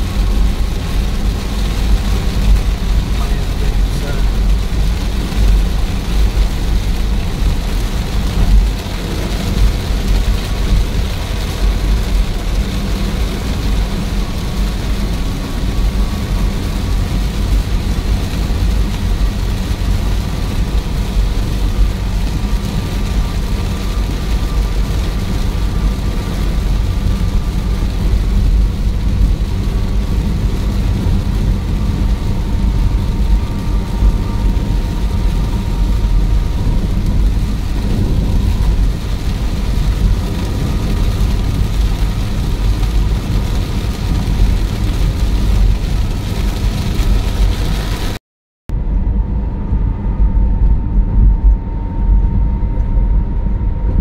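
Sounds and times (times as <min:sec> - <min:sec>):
rain hissing on car: 0:00.0 - 0:48.2
road and tyre rumble: 0:00.0 - 0:54.0.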